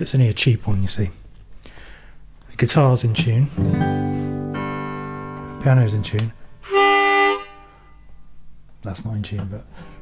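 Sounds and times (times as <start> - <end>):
harmonica chord: 6.6 - 8.2.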